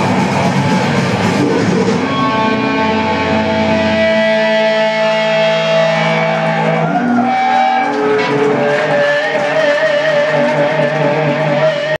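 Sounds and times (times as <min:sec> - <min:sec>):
amplified electric guitars sustained tone: 0:00.0 - 0:12.0.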